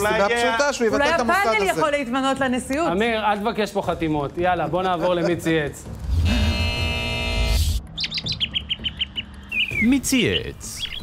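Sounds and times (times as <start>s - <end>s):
high bird tweet effects: 7.8s - 11.0s.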